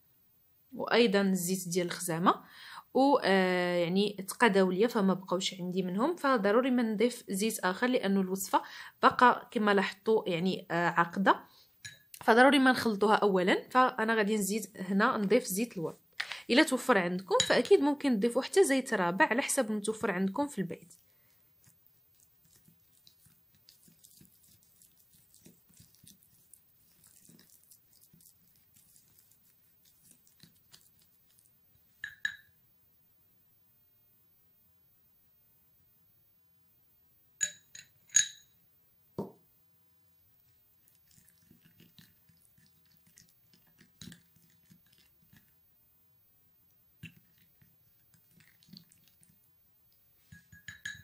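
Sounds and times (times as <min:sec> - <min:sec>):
glass clink: 0:11.8 - 0:12.1, 0:32.0 - 0:32.5, 0:37.4 - 0:38.6, 0:50.3 - 0:51.0
spoon scraping paste in bowl: 0:19.9 - 0:32.4, 0:40.8 - 0:45.6, 0:47.0 - 0:49.5, 0:50.2 - 0:51.0
light taps on glass bowl: 0:32.0 - 0:32.5, 0:50.3 - 0:51.0.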